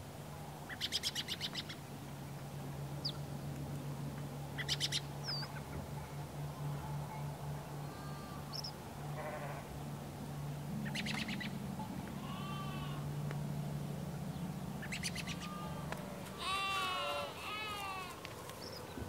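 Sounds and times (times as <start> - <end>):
steady low hum: 0.0 - 19.0
bird chirps and trills: 4.6 - 5.9, 10.8 - 11.6, 14.3 - 15.7
livestock bleating: 7.8 - 9.7, 12.2 - 13.1, 15.3 - 18.2.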